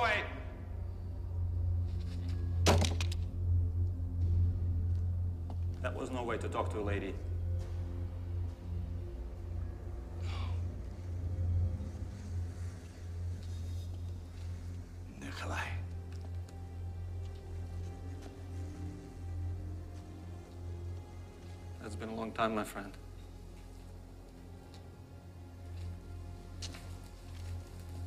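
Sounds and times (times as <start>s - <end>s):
low music drone: 0.0s - 28.0s
low rumble: 0.4s - 21.9s
sharp cracks and clattering knocks: 2.6s - 3.4s
man whispering: 15.0s - 16.1s.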